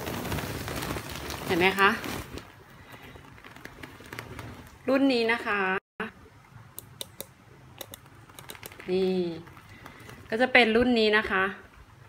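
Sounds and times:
woman speaking: 0:01.5 - 0:02.1, 0:04.9 - 0:06.2, 0:08.8 - 0:09.5, 0:10.3 - 0:11.7.

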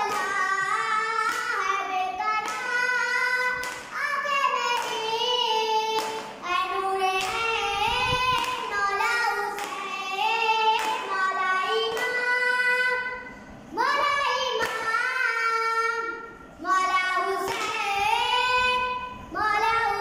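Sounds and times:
boy singing a lament unaccompanied: 0:00.0 - 0:20.0.

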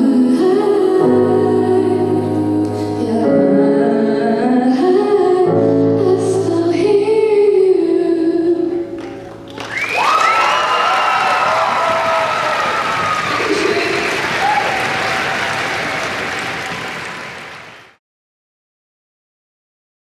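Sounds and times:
audience applauding and cheering: 0:09.2 - 0:18.0
high-pitched shrieks and whoops: 0:09.6 - 0:16.2.

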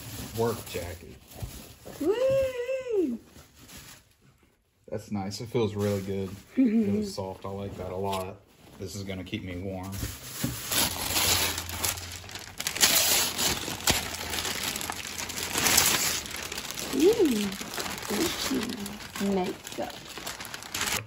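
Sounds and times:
wrapping paper crinkling: 0:00.0 - 0:04.3, 0:07.8 - 0:21.0.

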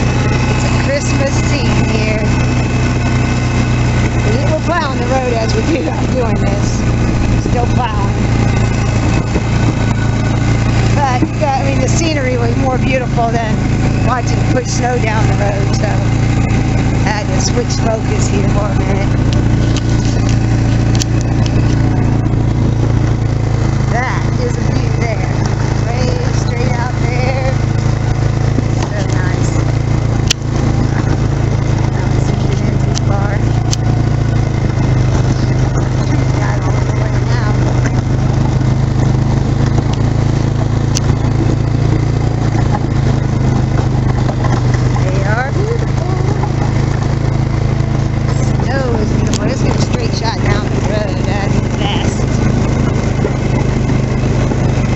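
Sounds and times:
atv engine running: 0:00.0 - 0:54.9.

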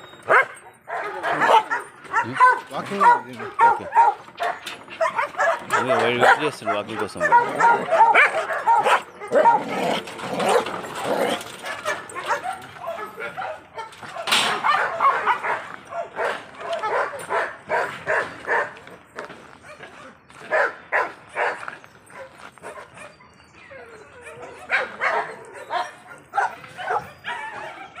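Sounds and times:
dog barking and yipping: 0:00.0 - 0:18.8, 0:19.6 - 0:28.0.

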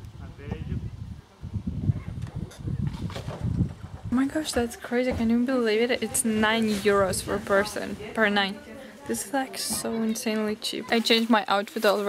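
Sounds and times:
wind buffeting microphone: 0:00.0 - 0:08.7.

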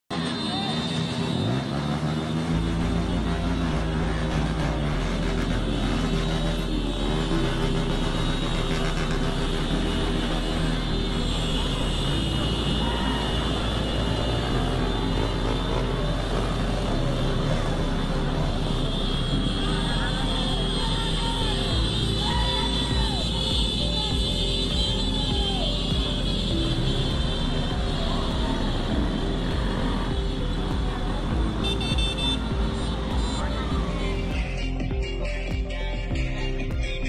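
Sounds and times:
music with steady bass: 0:02.4 - 0:37.0.

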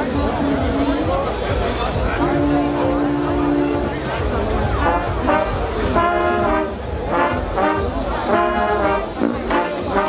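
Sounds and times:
brass band playing held chords: 0:00.0 - 0:10.0.

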